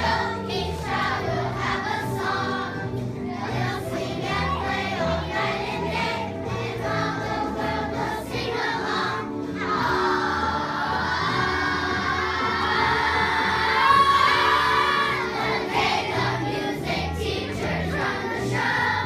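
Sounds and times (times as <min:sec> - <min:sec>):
backing music: 0:00.0 - 0:19.0
children's chorus singing: 0:00.0 - 0:19.0.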